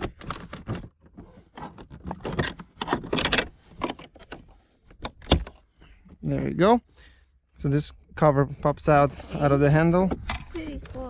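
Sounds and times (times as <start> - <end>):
plastic trim clicking and scraping: 0.0 - 5.7.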